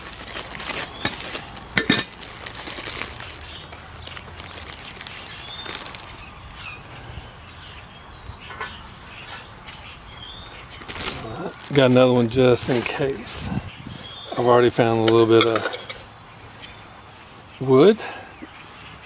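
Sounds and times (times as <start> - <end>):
plastic bag crinkling: 0.0 - 6.9, 10.4 - 12.9, 15.5 - 17.6.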